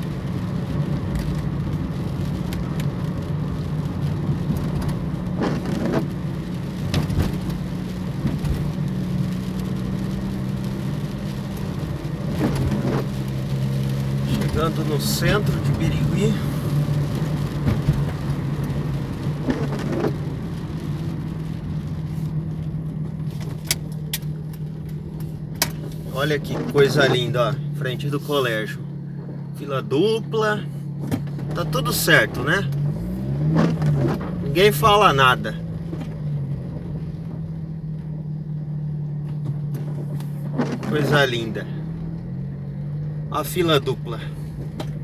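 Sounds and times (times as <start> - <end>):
car engine and road noise: 0.0 - 45.0.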